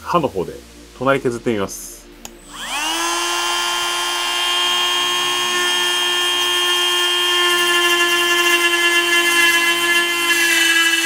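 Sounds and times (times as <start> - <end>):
rotary tool high whine: 0.7 - 11.0
rotary tool cutting plastic: 2.6 - 11.0.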